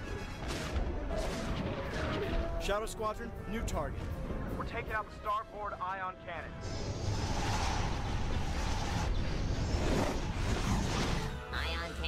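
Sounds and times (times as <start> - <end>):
spacecraft engine rush: 6.1 - 11.5
whoosh sweeping by: 6.6 - 11.3.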